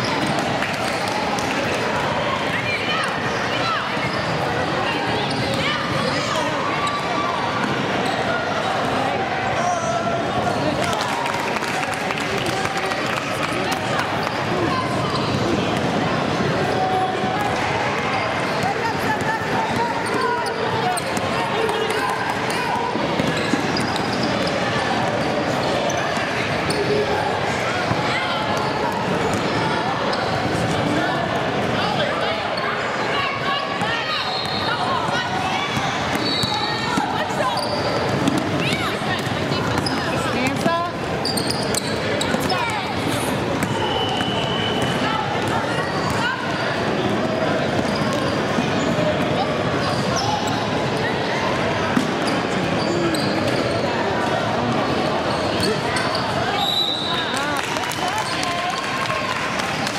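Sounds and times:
voices echoing in gymnasium: 0.0s - 59.9s
shoe squeaks: 3.7s - 4.5s, 5.2s - 7.1s, 19.7s - 27.0s, 34.1s - 49.0s, 52.2s - 53.9s, 55.0s - 57.3s.

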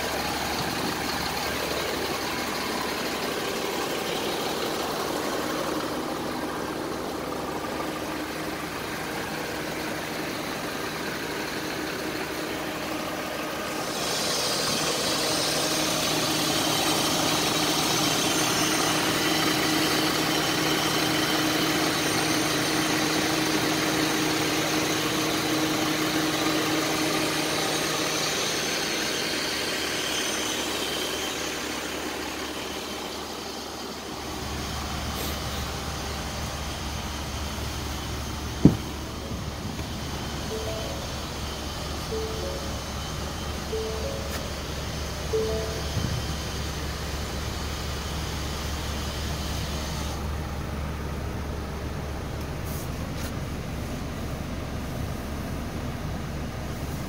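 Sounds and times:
van engine idling: 0.0s - 57.0s.

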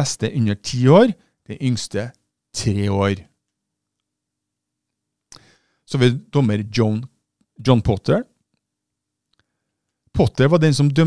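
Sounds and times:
man speaking: 0.0s - 3.4s, 5.9s - 8.4s, 10.1s - 11.0s.

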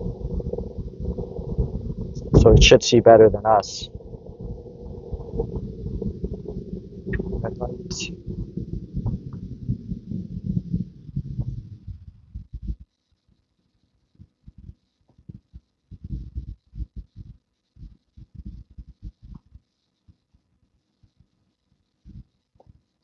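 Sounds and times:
air buffeting microphone: 0.0s - 12.8s
faint fan hiss: 0.0s - 23.0s.

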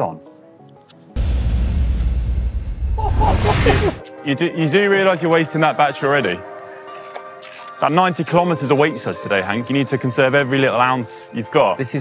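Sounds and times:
deep bass rumble: 1.2s - 4.0s
rising whoosh: 1.2s - 4.0s.

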